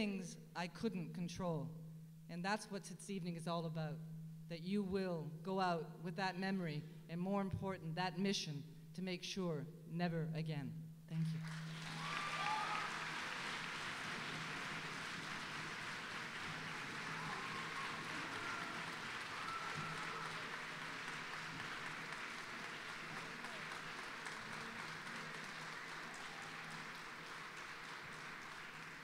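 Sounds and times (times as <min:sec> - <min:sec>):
audience applauding: 0:11.4 - 0:29.0.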